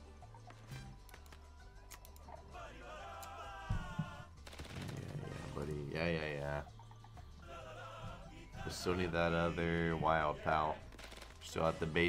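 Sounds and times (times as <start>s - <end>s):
slot game background music: 0.0s - 3.5s, 4.2s - 12.0s
quick clicks: 10.9s - 11.4s.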